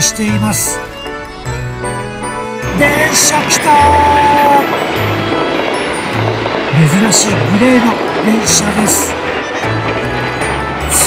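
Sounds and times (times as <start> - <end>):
electric train passing: 0.0 - 11.0.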